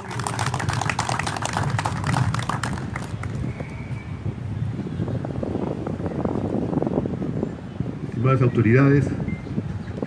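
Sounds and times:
audience applause: 0:00.0 - 0:03.4.

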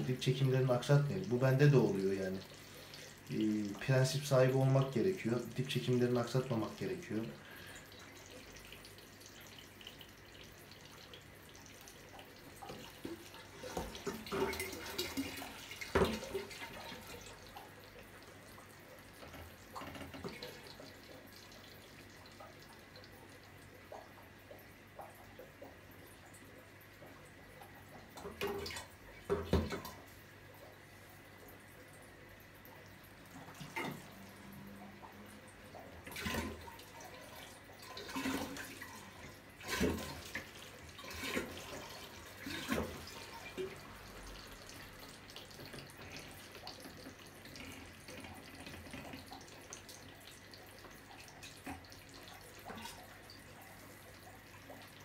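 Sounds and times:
water splashes: 0:00.0 - 0:32.0, 0:32.6 - 0:55.0
water trickling through hose: 0:00.0 - 0:55.0.

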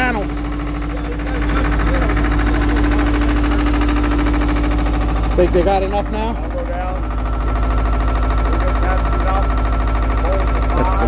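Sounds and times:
engine running with low pulse: 0:00.0 - 0:11.0.

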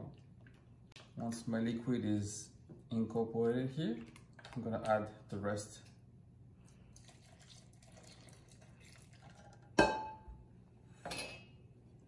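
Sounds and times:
liquid pouring into bowl: 0:06.6 - 0:09.8.

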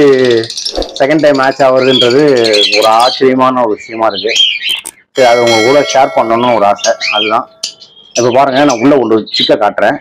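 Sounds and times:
man talking loudly: 0:00.0 - 0:04.4, 0:05.2 - 0:07.5
lovebirds chirping: 0:00.0 - 0:10.0.

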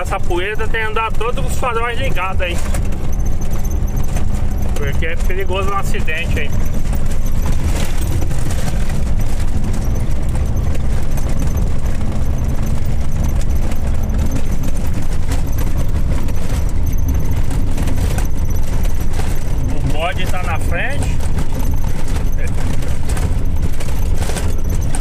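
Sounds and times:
cab rattles and knocks: 0:00.0 - 0:25.0
truck engine and road rumble: 0:00.0 - 0:25.0.

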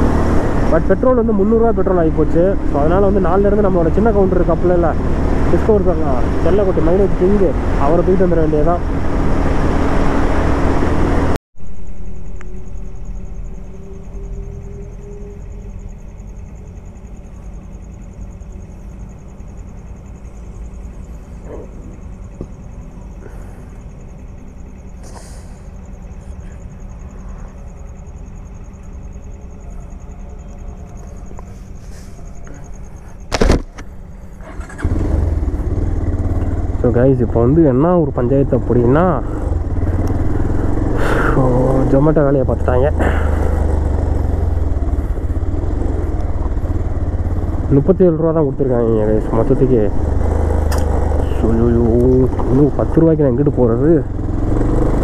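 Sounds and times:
motorcycle riding noise: 0:00.0 - 0:55.0
motorcycle engine idling: 0:12.2 - 0:33.3, 0:33.9 - 0:55.0.

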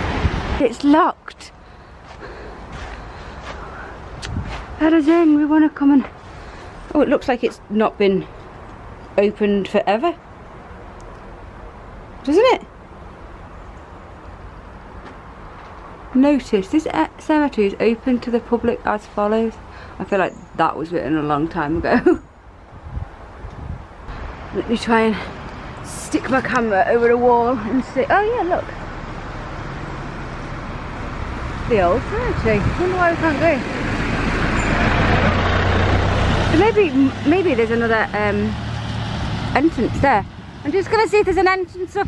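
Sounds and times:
small lorry driving past: 0:24.1 - 0:41.8.

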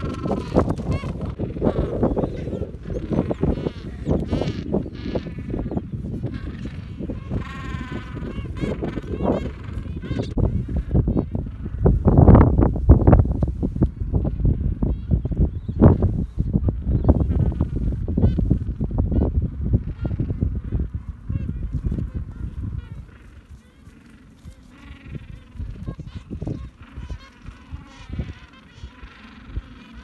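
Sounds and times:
birds honking: 0:00.0 - 0:13.1, 0:14.0 - 0:30.0
wind rumble on microphone: 0:00.0 - 0:30.0.

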